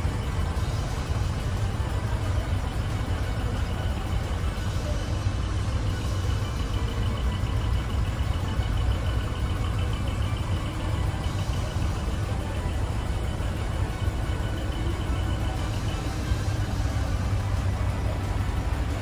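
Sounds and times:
diesel truck engines idling: 0.0 - 19.0
faint music: 0.0 - 19.0.

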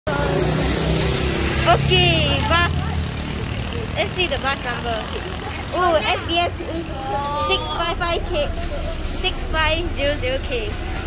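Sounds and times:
bus engine humming: 0.1 - 11.0.

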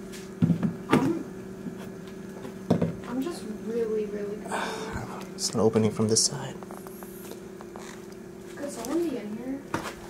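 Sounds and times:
refrigerator humming: 0.0 - 10.0.

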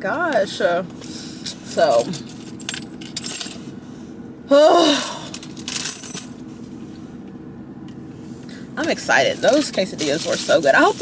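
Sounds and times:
car interior hum: 0.0 - 11.0
small metal objects jingling: 1.7 - 3.6, 5.0 - 6.4.

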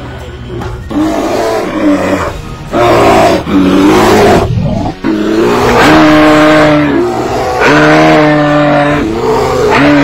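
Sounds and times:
bear roaring: 0.6 - 10.0.

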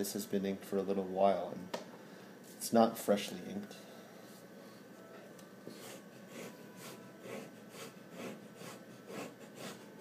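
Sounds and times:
fountain pen scratching on paper: 5.8 - 9.8.

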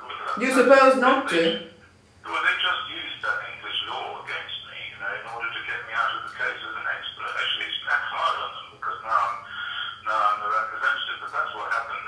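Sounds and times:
person talking through phone speaker: 0.0 - 1.6, 2.3 - 12.0.

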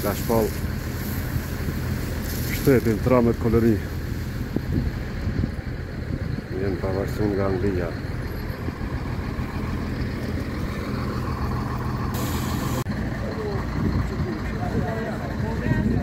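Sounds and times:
fire engine idling: 0.0 - 16.0
brief hiss: 12.2 - 12.8.

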